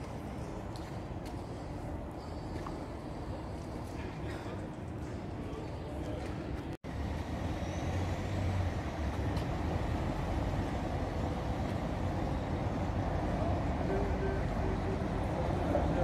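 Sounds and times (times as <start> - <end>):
traffic noise: 0.0 - 16.0.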